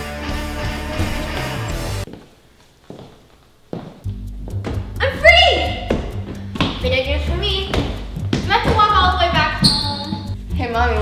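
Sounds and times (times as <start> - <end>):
music: 0.0 - 2.1, 4.0 - 11.0
footsteps on tile floor: 0.5 - 5.0, 5.7 - 10.4.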